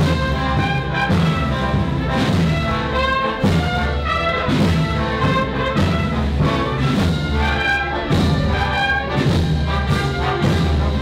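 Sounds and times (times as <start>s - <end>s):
wind band playing a march: 0.0s - 11.0s.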